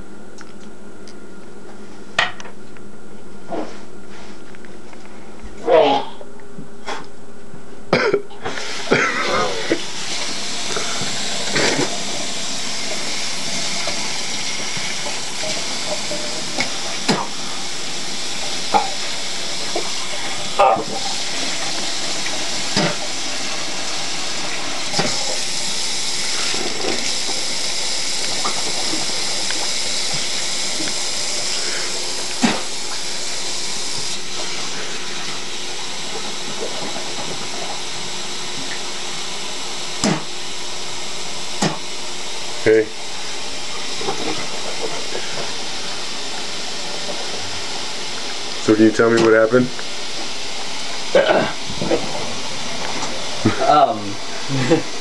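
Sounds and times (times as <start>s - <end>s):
person coughing and spitting: 7.9s - 9.9s, 10.7s - 12.0s, 17.0s - 17.4s, 40.0s - 40.3s, 51.1s - 51.7s.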